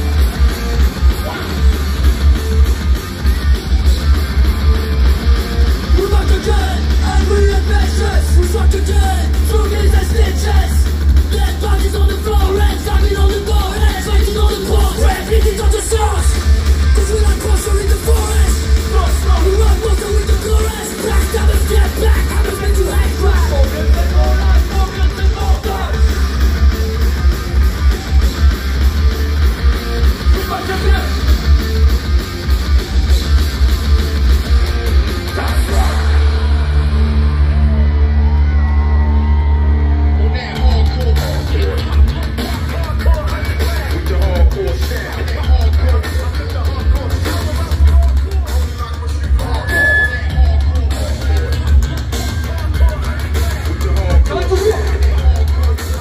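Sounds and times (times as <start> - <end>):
electric guitar: 0.0 - 56.0
heavy pulsing bass: 0.0 - 56.0
live rock band playing: 0.0 - 56.0.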